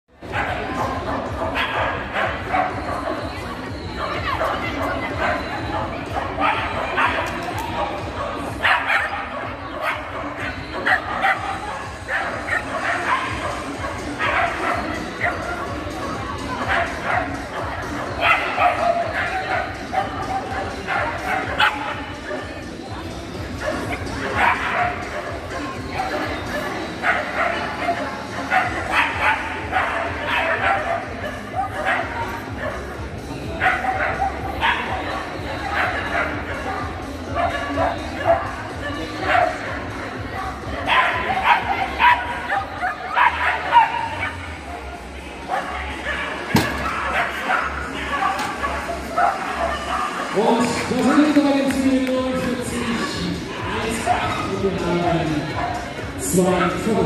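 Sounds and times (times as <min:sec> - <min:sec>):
dog barking: 0:00.4 - 0:03.2, 0:06.3 - 0:07.4, 0:08.2 - 0:15.5, 0:16.6 - 0:22.0, 0:23.6 - 0:26.2, 0:26.9 - 0:32.9, 0:33.6 - 0:36.6, 0:37.3 - 0:39.8, 0:40.9 - 0:44.4, 0:45.5 - 0:50.2.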